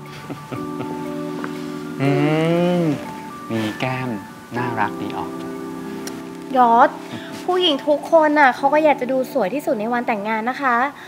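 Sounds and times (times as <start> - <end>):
man humming hmm: 0.0 - 4.2
soft background music: 0.0 - 11.0
man speaking: 2.0 - 5.4.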